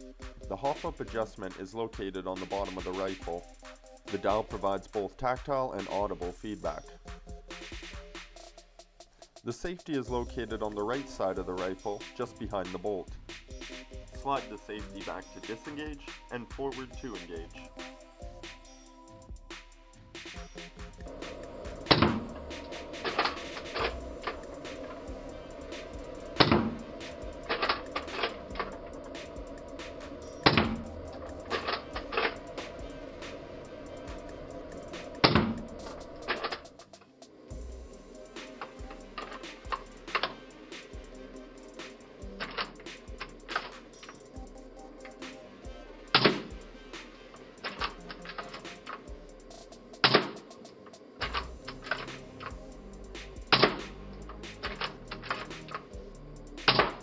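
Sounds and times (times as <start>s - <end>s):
background music: 0.0s - 57.0s.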